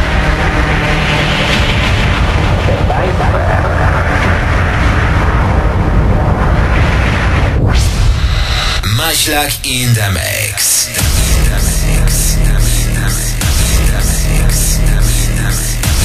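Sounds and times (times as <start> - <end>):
rumbling explosion sound effect: 1.7 - 14.3
electronic dance music: 8.3 - 16.0.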